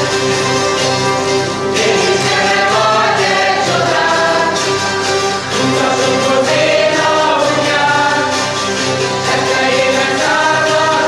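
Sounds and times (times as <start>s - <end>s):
zither ensemble strumming chords: 0.0s - 11.0s
group singing in unison: 1.7s - 11.0s.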